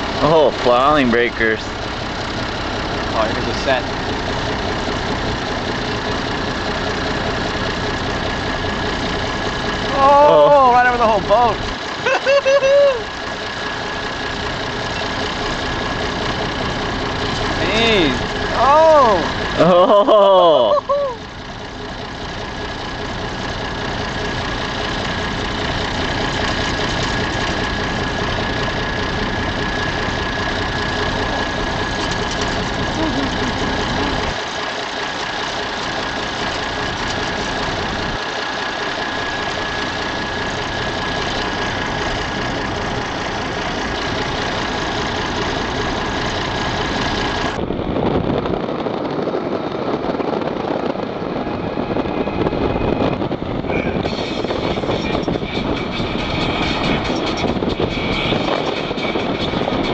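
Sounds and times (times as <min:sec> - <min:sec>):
engine idling: 0:00.0 - 0:59.9
thin steady whine: 0:00.0 - 0:59.9
wind: 0:00.0 - 0:59.9.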